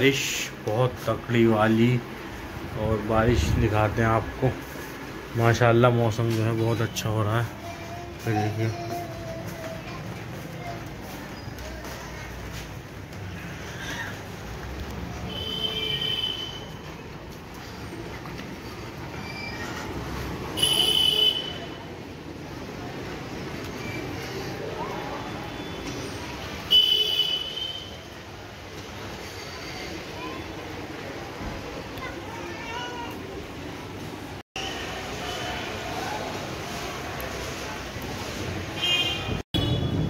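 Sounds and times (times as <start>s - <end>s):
street noise: 0.0s - 40.0s
high-pitched vehicle horn blast: 20.6s - 21.7s
rain on a rooftop: 30.0s - 40.0s
rain: 34.8s - 38.9s.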